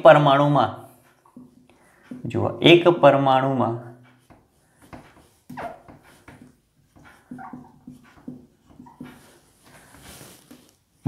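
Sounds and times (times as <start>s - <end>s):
whiteboard marker squeaking: 4.0s - 10.0s.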